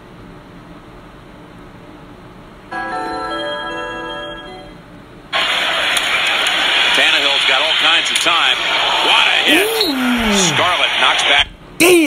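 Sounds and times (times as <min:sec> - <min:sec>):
commentator talking: 0:09.4 - 0:10.8.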